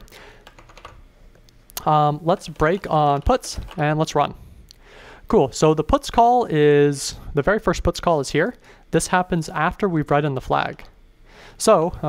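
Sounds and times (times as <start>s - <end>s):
keyboard keystrokes: 0.4s - 1.0s.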